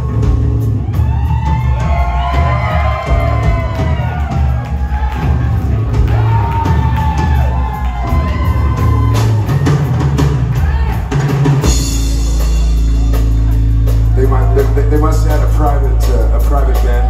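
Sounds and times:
crowd whooping and shouting: 0.0s - 11.9s, 12.9s - 17.0s
rock band playing live: 0.0s - 17.0s.

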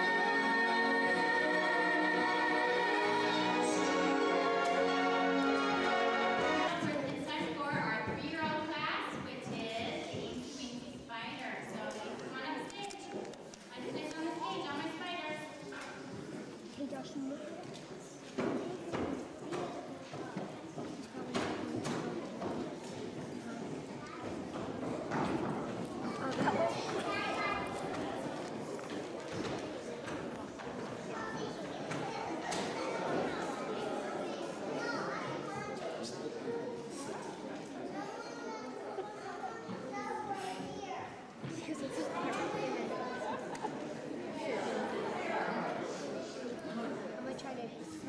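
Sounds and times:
indistinct chatter of many voices: 0.0s - 48.0s
people talking: 5.8s - 15.9s, 26.0s - 29.1s, 31.0s - 48.0s.

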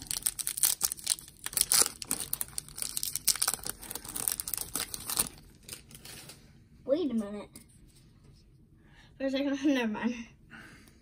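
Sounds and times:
card pack wrapper crinkling and tearing: 0.0s - 6.4s.

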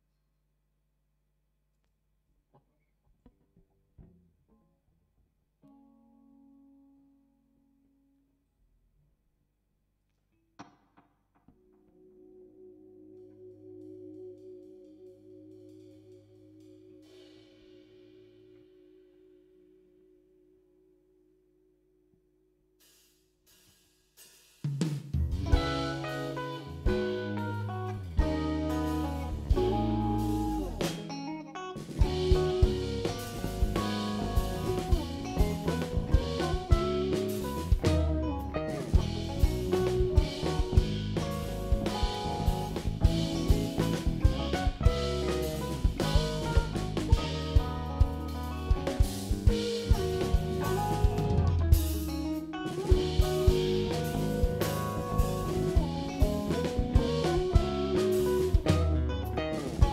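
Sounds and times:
bass guitar: 2.5s - 7.8s, 10.6s - 20.2s, 24.9s - 59.9s
electric guitars: 11.4s - 18.7s, 25.2s - 59.9s
busy drums: 22.8s - 59.9s.

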